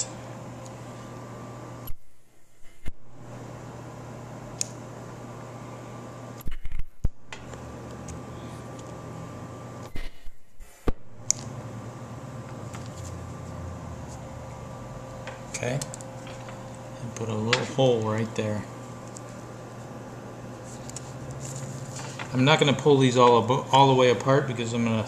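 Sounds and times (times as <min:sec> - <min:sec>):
electrical hum: 0:00.0 - 0:25.0.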